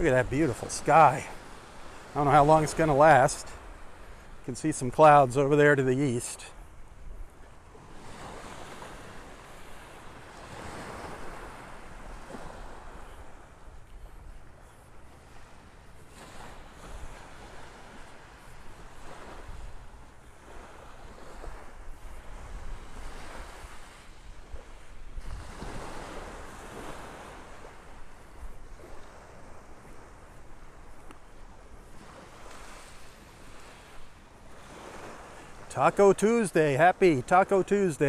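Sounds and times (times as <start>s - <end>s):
waves washing onto sandy beach: 0.0s - 38.0s
wind rumbling on microphone: 16.1s - 35.1s.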